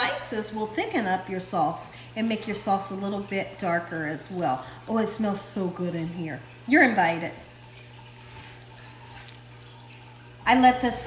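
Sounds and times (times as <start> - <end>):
spatula stirring thick sauce: 7.5 - 10.6.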